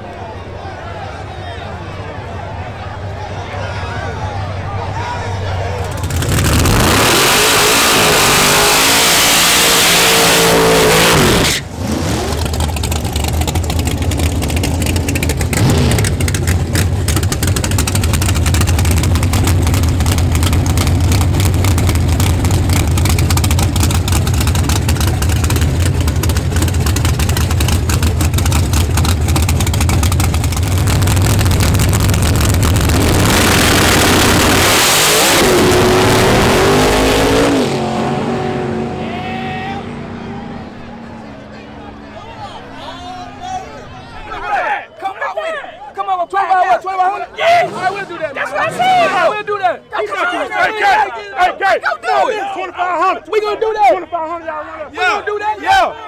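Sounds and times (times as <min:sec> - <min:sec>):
car engine revving and idling: 0:04.2 - 0:42.8.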